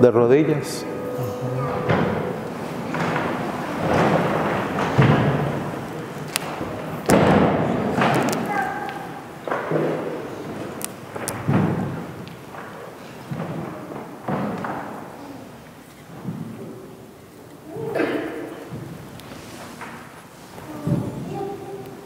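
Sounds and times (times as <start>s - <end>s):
faint voices: 0.0s - 9.4s
dull thuds and knocks echoing: 1.8s - 8.4s.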